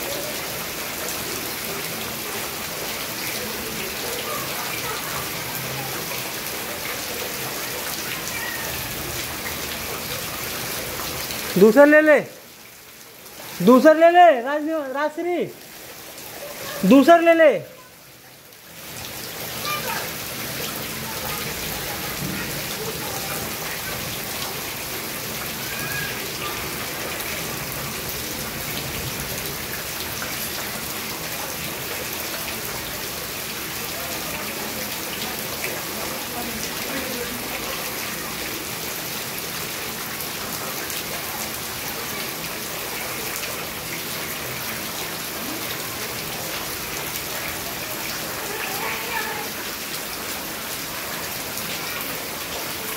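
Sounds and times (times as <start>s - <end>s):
heavy rain falling: 0.0s - 52.9s.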